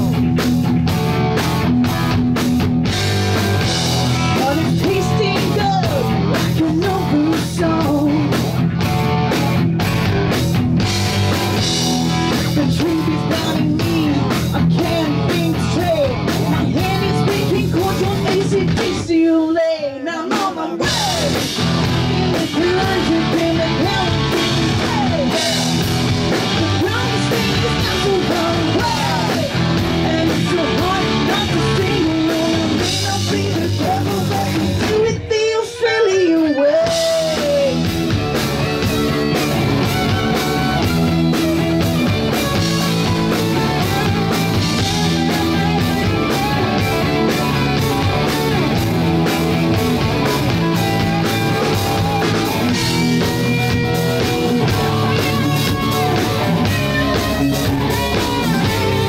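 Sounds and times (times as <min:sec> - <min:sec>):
live rock band playing: 0:00.0 - 0:59.0
woman singing: 0:04.4 - 0:08.4, 0:12.3 - 0:21.5, 0:22.3 - 0:25.8, 0:26.4 - 0:37.8.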